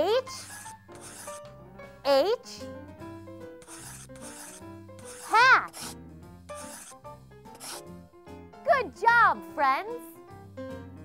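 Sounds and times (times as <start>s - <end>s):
light children's music: 0.0s - 11.0s
marker scribbling: 0.1s - 1.5s, 3.6s - 7.9s.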